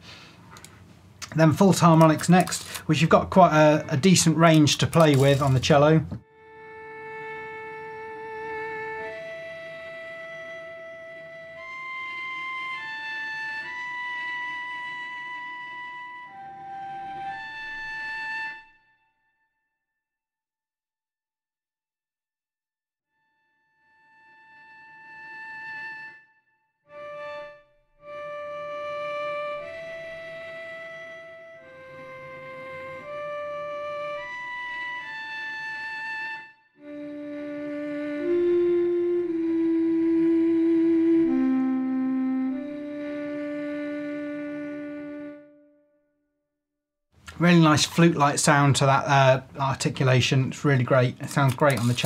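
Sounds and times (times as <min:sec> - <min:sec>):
cello harmonics: 0:01.2 - 0:18.9, 0:26.9 - 0:45.7.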